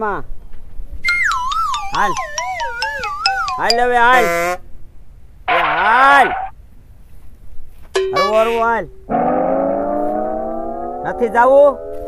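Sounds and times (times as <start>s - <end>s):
person speaking: 1.9s - 4.6s, 5.5s - 6.5s.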